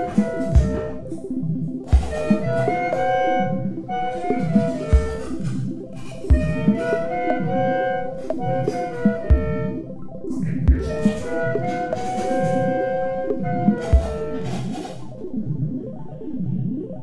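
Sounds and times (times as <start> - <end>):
clarinets and electronics held tones: 1.9 - 15.0
deep thumps: 10.6 - 11.3.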